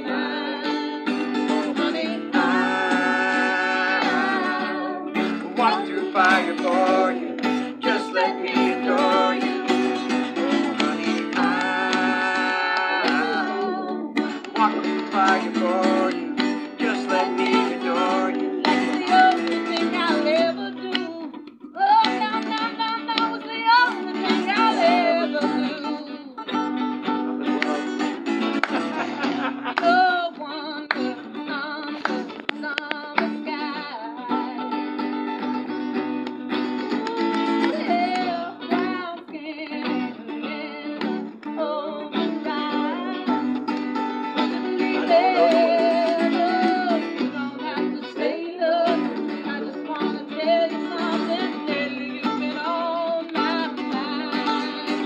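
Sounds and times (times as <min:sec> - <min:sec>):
person singing: 0:00.0 - 0:34.8, 0:36.6 - 0:55.0
acoustic guitar strummed: 0:00.0 - 0:55.0.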